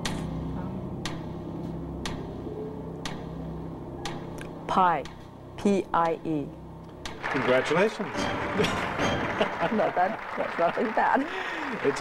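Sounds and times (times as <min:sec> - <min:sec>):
low music drone: 0:00.0 - 0:12.0
countdown clock ticking: 0:01.0 - 0:02.4, 0:03.0 - 0:10.3.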